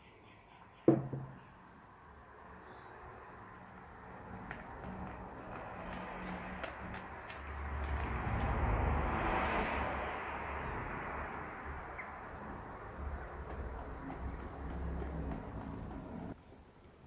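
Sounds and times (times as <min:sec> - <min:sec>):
whisk beating wet batter: 0:10.6 - 0:16.4.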